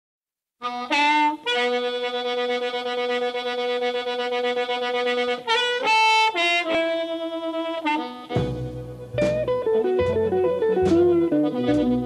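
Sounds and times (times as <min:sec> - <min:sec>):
reed instrument playing blues: 0:00.6 - 0:12.0.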